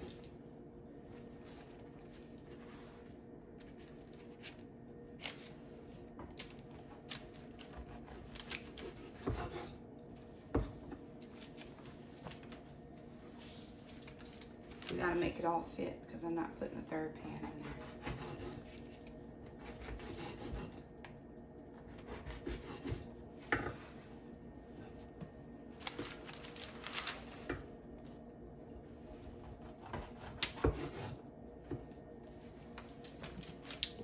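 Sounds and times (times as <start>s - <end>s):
knife sawing through bread: 17.5s - 18.8s, 19.6s - 20.8s, 21.9s - 23.0s, 29.7s - 31.2s.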